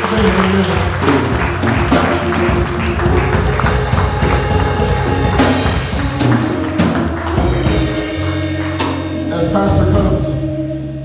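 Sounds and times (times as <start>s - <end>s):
praise music with percussive beat: 0.0s - 11.0s.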